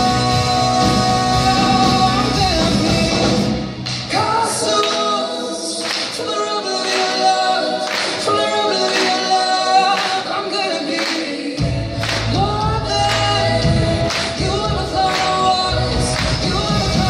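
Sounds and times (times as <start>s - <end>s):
bass and drums: 0.0s - 4.4s, 11.6s - 17.0s
person singing: 0.0s - 17.0s
hand claps: 4.8s - 5.1s, 5.8s - 6.2s, 6.8s - 10.3s, 10.9s - 11.3s, 12.0s - 12.4s, 13.0s - 13.4s, 14.1s - 15.5s, 16.1s - 16.6s.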